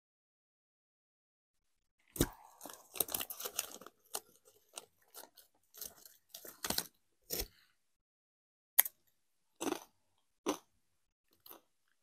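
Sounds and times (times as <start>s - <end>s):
chip bag crinkling: 2.2s - 6.9s.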